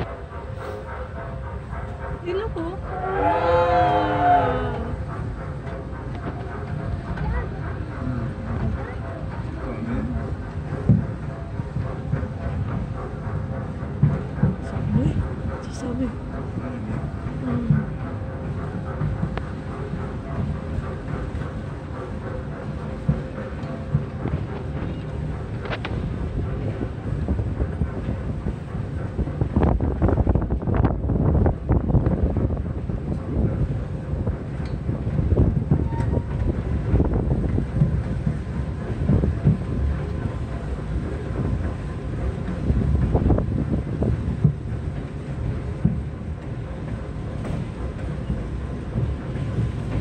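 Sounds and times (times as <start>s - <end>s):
small train rumbling on track: 0.0s - 50.0s
train cars knocking and rattling: 0.0s - 50.0s
wind buffeting microphone: 0.0s - 50.0s.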